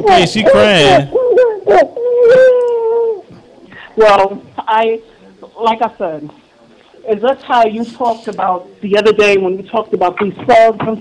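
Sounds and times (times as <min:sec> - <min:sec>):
young girl crying: 0:01.1 - 0:03.2.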